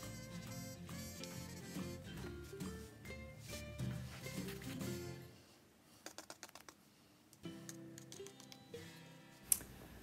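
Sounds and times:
faint music with held notes: 0.0s - 5.6s, 7.4s - 10.0s.

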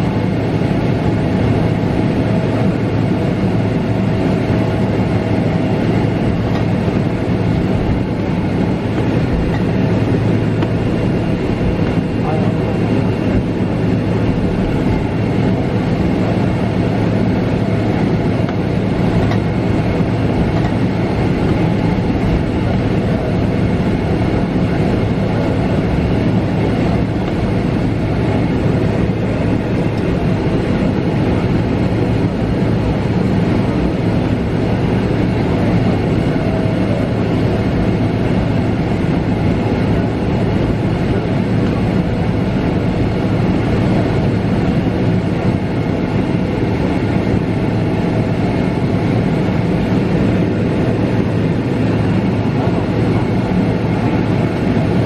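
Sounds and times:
jet engines idling hum: 0.0s - 55.0s
wheels rumbling on taxiway: 0.0s - 55.0s.

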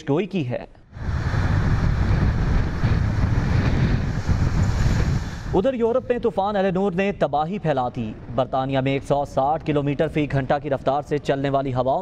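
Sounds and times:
wind buffeting microphone: 0.9s - 12.0s.

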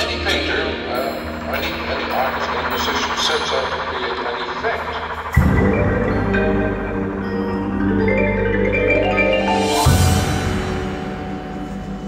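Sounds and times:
electronic soundtrack: 0.0s - 12.0s
percussion ensemble playing: 0.0s - 12.0s.

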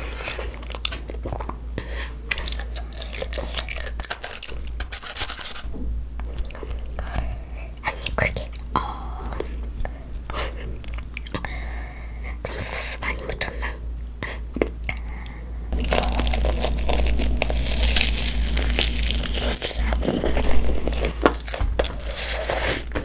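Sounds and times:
crunching bites and chewing: 2.3s - 5.5s, 15.7s - 23.0s.

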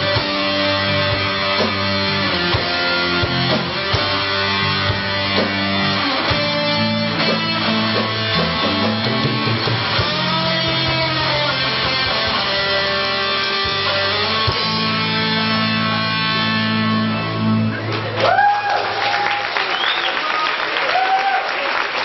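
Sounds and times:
rock band with electric guitars: 0.0s - 19.1s.

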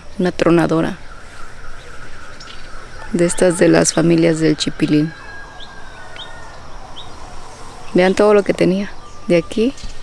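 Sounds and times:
bird chirps: 0.0s - 10.0s.

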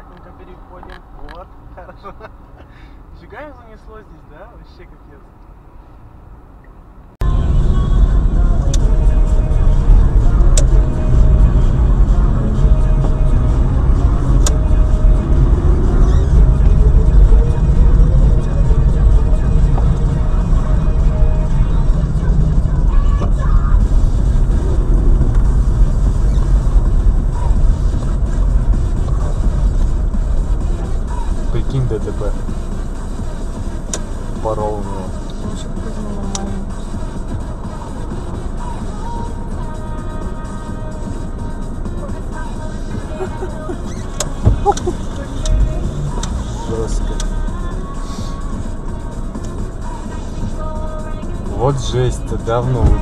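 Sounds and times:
car interior rumble: 0.0s - 53.0s
music playing: 7.2s - 53.0s.

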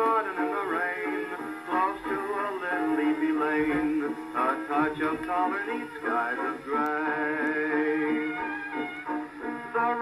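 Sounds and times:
man singing: 0.0s - 8.5s, 9.5s - 10.0s
old dance band record: 0.0s - 10.0s.

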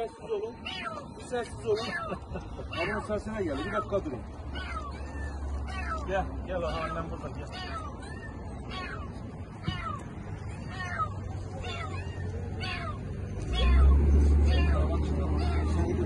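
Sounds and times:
cat meowing: 0.5s - 15.9s.

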